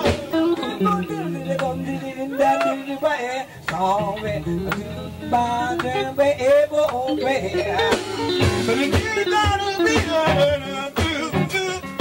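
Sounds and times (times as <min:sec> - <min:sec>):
drums: 0:00.0 - 0:02.8, 0:05.7 - 0:12.0
bass: 0:00.0 - 0:12.0
electric guitar lead: 0:00.0 - 0:12.0.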